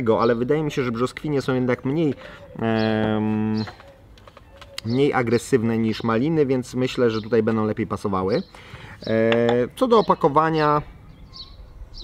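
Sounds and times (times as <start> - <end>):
man speaking: 0.0 - 3.8, 4.8 - 10.9.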